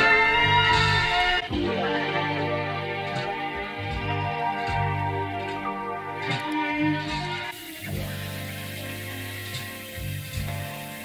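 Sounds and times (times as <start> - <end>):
beat with bass and melody: 0.0 - 11.0
steady hiss: 0.0 - 11.0.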